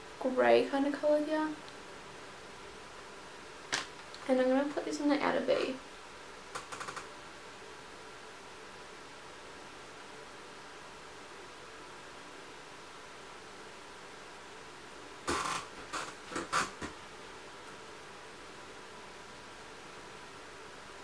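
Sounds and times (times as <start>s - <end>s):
faint background hiss: 0.0s - 21.0s
small clicks: 6.5s - 7.1s.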